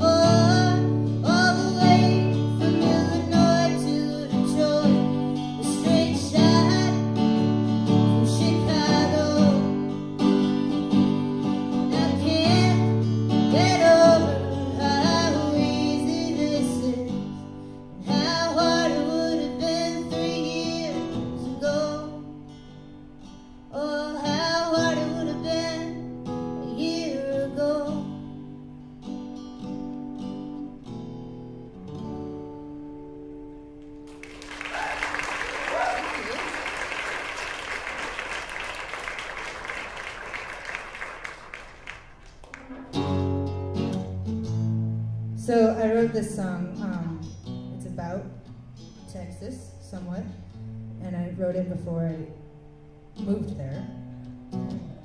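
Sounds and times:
woman singing: 0.0s - 7.2s, 8.1s - 9.8s, 11.8s - 17.3s, 18.0s - 22.3s, 23.7s - 26.0s, 26.7s - 28.2s
acoustic guitar: 0.0s - 55.0s
audience applauding: 34.0s - 43.2s.

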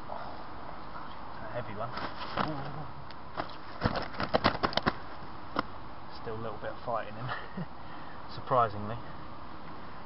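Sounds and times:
fish slapping on the ground: 3.4s - 5.0s.

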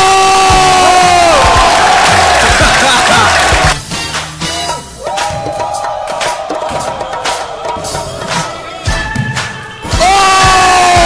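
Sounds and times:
crowd cheering and shouting: 0.0s - 3.8s, 4.8s - 11.0s
background music with a beat: 0.0s - 11.0s
long held shout: 9.9s - 11.0s.

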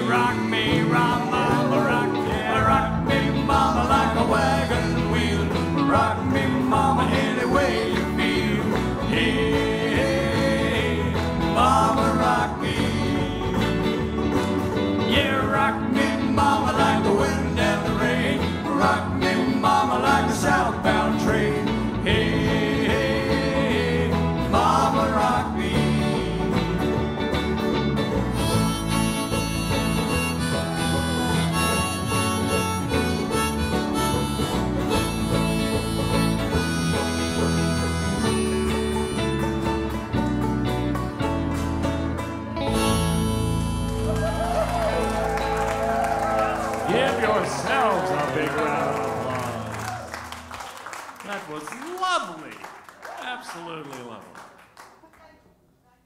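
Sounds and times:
bending lead melody: 0.0s - 50.6s
country band playing: 0.0s - 52.7s.

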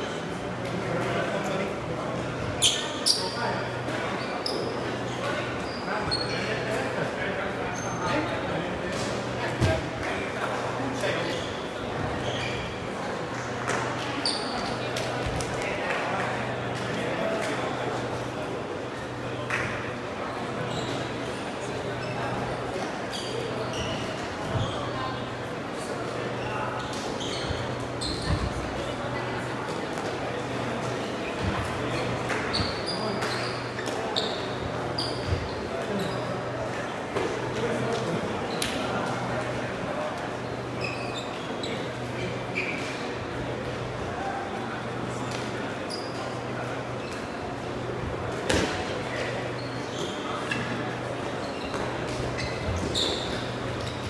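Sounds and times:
many voices talking and calling: 0.0s - 54.0s.

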